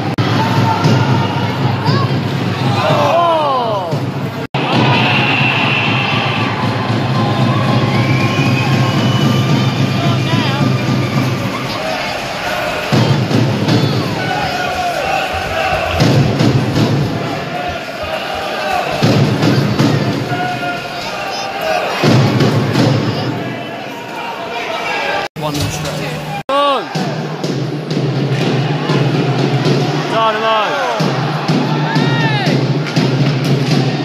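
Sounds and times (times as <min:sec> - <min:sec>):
music over arena speakers: 0:00.0 - 0:23.5
crowd chatter and cheering: 0:00.0 - 0:34.0.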